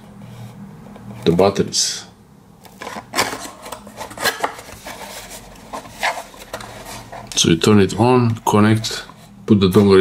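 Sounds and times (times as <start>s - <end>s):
cardboard box scraping and tapping: 2.8s - 7.3s.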